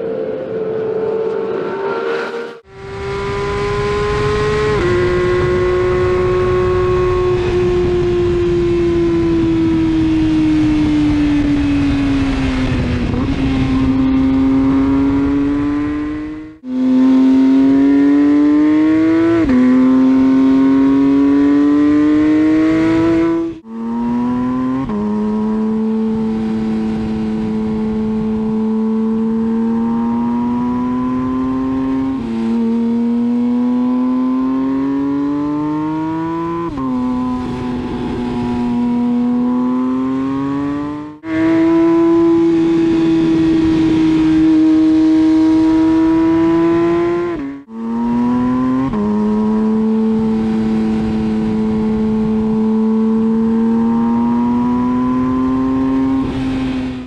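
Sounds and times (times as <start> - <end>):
sports car engine revving: 1.1 - 57.0.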